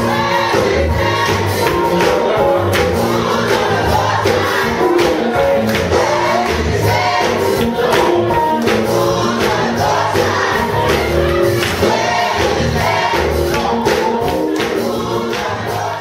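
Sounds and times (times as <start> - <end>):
gospel choir singing: 0.0 - 16.0
steady percussive beat: 0.0 - 16.0.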